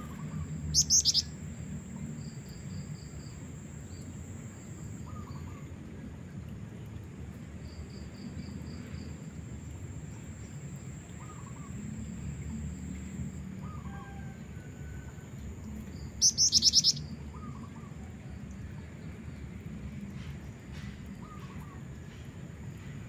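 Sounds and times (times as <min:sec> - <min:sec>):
high-pitched bird trill: 0:00.1 - 0:01.3, 0:16.2 - 0:17.0.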